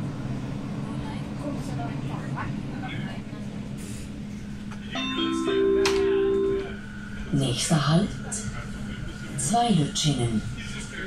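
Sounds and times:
train rumbling inside carriage: 0:00.0 - 0:11.0.

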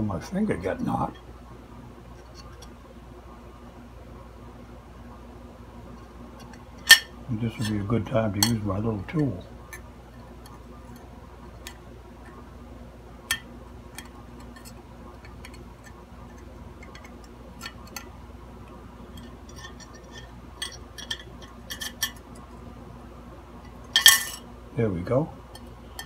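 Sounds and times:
faint low hum: 0:00.0 - 0:26.0
small metallic clicks and taps: 0:13.3 - 0:18.1.

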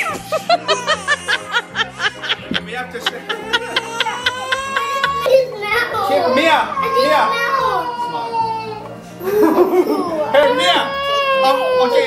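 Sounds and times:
rapid high-pitched laughter: 0:00.0 - 0:05.4
soft background music: 0:00.0 - 0:12.0.

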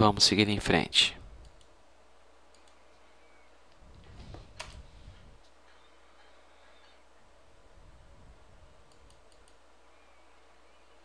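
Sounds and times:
person speaking: 0:00.0 - 0:01.2
computer mouse clicks: 0:01.4 - 0:01.8, 0:02.5 - 0:03.0, 0:08.8 - 0:09.6.

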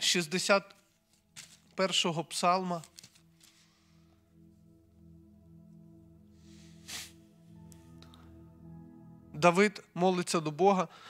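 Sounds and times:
soft music of held chords: 0:00.0 - 0:11.0
short hiss: 0:06.7 - 0:07.2.

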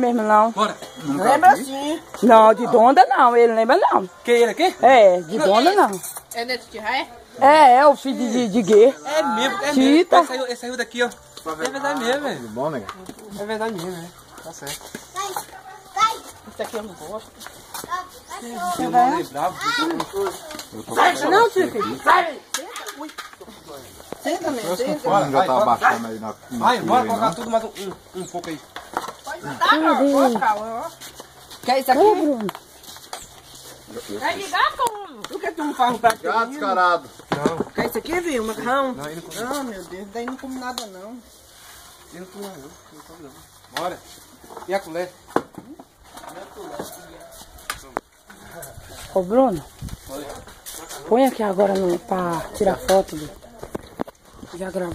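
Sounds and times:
people talking with children: 0:00.0 - 0:54.9.

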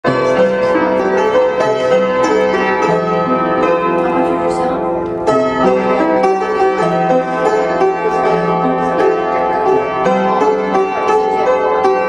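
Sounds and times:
ragtime piano piece: 0:00.0 - 0:12.0.

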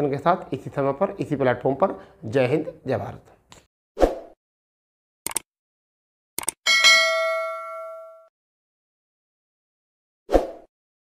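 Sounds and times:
notification bell ding: 0:06.7 - 0:08.3.

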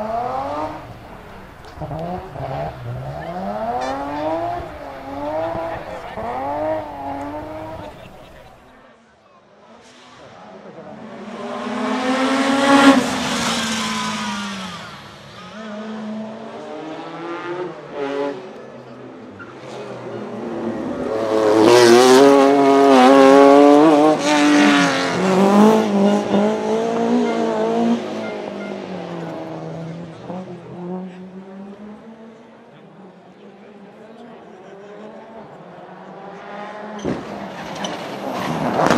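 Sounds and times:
rally cars passing at speed: 0:00.0 - 0:08.8, 0:09.5 - 0:38.9.

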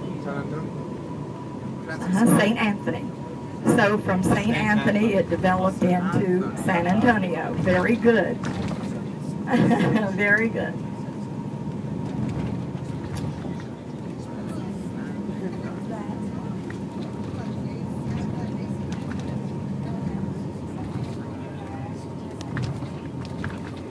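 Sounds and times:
coach engine rumble: 0:00.0 - 0:23.9
faint passenger chatter: 0:00.0 - 0:23.9
road noise: 0:00.0 - 0:23.9
thin steady whine: 0:00.0 - 0:23.9.

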